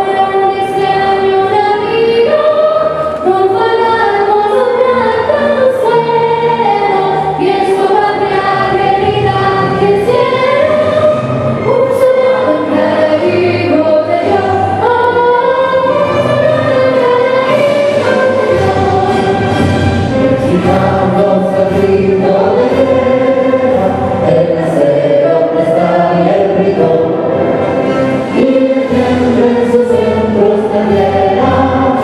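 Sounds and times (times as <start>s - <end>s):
mixed vocal group singing an anthem: 0.0s - 32.0s.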